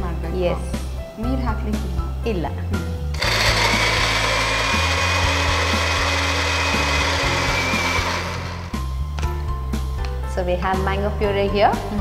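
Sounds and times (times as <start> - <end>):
electric blender whining: 3.2 - 8.9.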